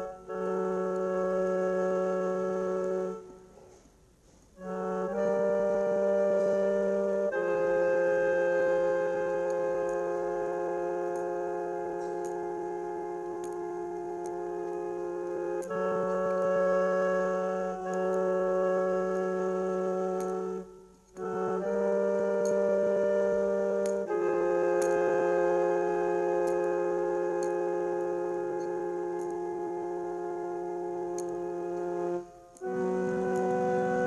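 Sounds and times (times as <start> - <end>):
held organ chords: 0.0 - 3.8, 4.6 - 34.0.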